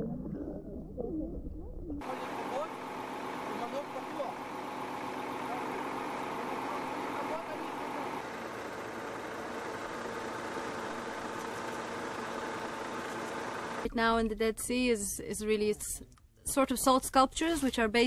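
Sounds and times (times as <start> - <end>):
steady motor hum: 2.0 - 13.9.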